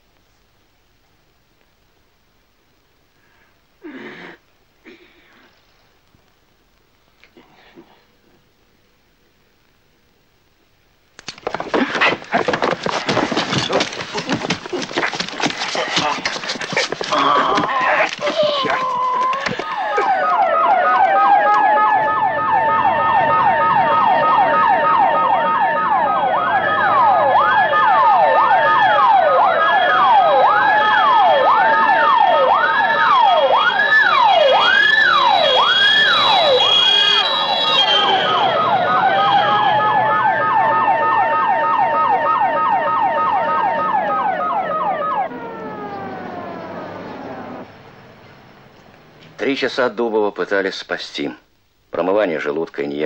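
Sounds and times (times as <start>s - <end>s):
ambulance siren wailing: 12.4s - 48.2s.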